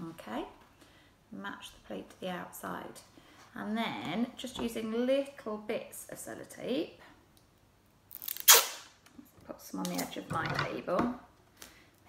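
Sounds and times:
tape ripping off roll: 8.1 - 9.0.

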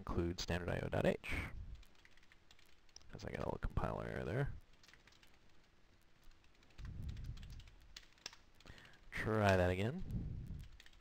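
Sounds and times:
faint computer keyboard typing: 1.7 - 11.0.

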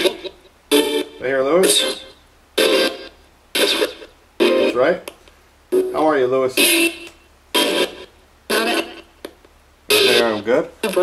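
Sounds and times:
chopped radio bursts from speaker: 9.9 - 11.0.

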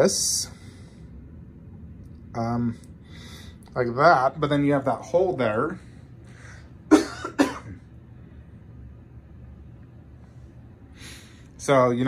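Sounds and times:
man coughing: 6.9 - 7.9.

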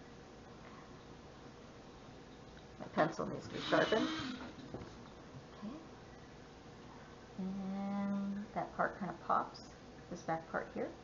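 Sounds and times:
pencil sharpener grinding: 3.5 - 4.6
woman humming: 7.4 - 8.5.

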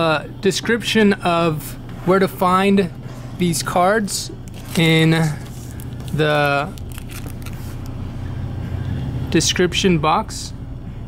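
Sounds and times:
low background rumble: 0.2 - 11.0.

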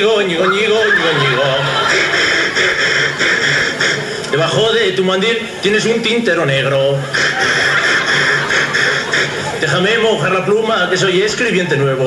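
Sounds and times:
man wailing in a song: 7.1 - 9.6.

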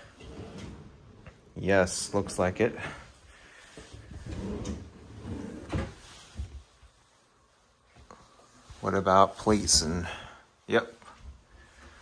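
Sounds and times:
drawer sliding rumble: 0.0 - 1.2, 4.0 - 6.0.

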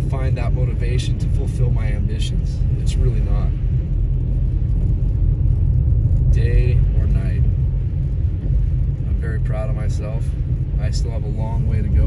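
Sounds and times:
car engine rumble: 0.0 - 12.0
tyres on wet snowy road: 0.0 - 12.0.

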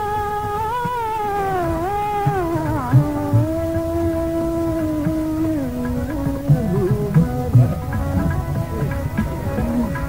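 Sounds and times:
man singing a long note: 0.0 - 10.0.

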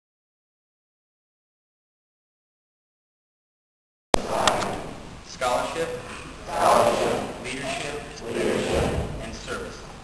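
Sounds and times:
group of voices reciting together: 4.2 - 9.8.

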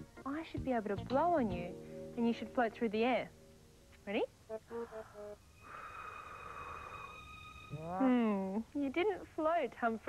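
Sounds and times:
woman blowing out breath: 4.7 - 7.4.

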